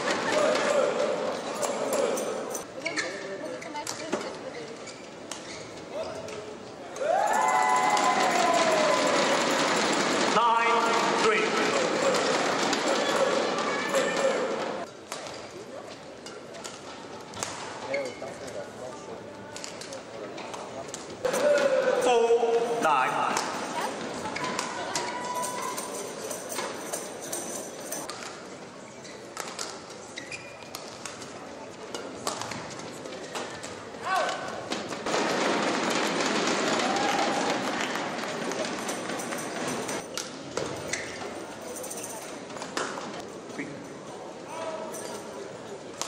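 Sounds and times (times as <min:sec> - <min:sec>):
spectators cheering and applauding: 0:07.0 - 0:14.3, 0:35.9 - 0:38.2.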